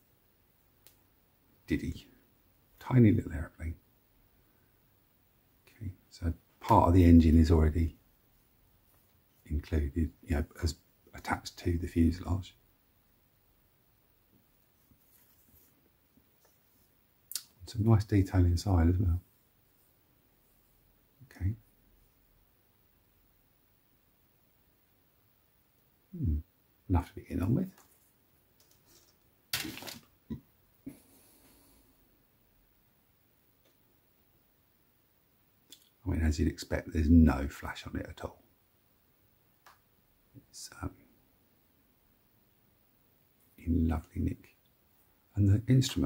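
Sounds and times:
soft plastic handling sounds: 14.3s - 17.8s, 27.6s - 31.8s
plastic parts rustling and clattering: 28.6s - 30.1s.

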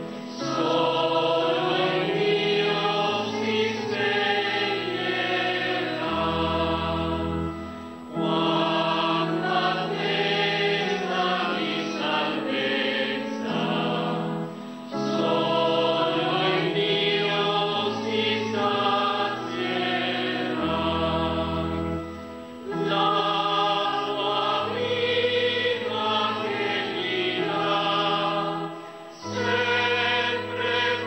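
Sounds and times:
choir singing a hymn: 0.0s - 31.0s.

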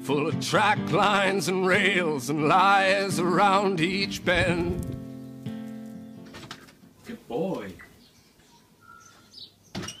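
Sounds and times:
faint bird chirps: 7.8s - 10.0s.

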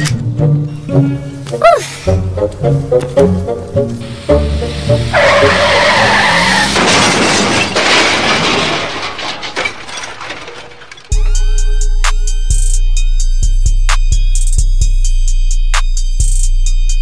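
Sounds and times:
film soundtrack music: 0.0s - 6.8s
tire screech: 4.0s - 8.4s
hip-hop beat with heavy bass: 11.1s - 17.0s.

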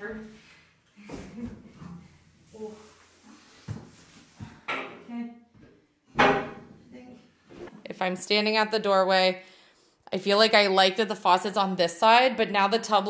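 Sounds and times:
bathtub knocking on wooden floor: 6.2s - 6.7s.

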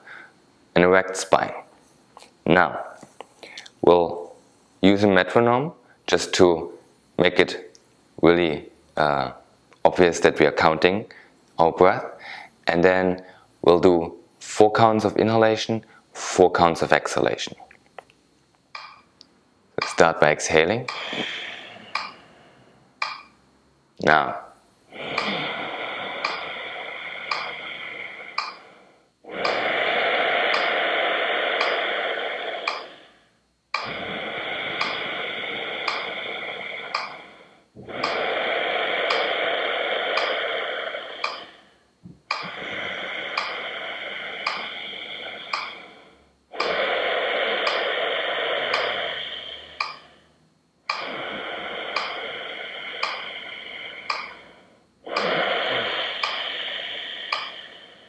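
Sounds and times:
man breathing slowly: 0.0s - 0.4s, 12.1s - 12.6s, 20.8s - 23.4s, 24.4s - 58.0s.

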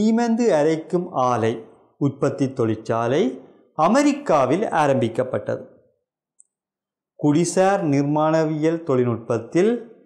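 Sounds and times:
man narrating: 0.0s - 5.7s, 7.2s - 9.9s.

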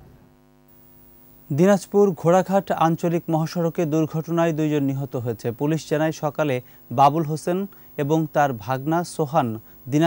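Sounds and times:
faint electrical hum: 0.0s - 10.0s
man speaking: 1.5s - 10.0s.

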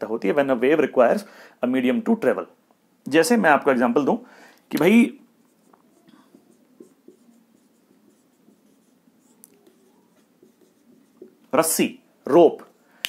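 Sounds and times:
marker pen writing on whiteboard: 4.8s - 11.8s.

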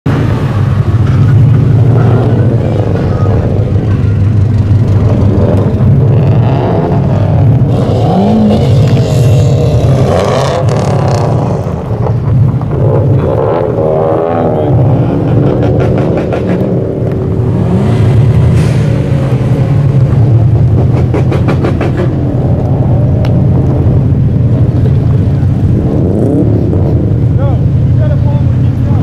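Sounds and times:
car engines rumbling past: 0.1s - 29.0s.

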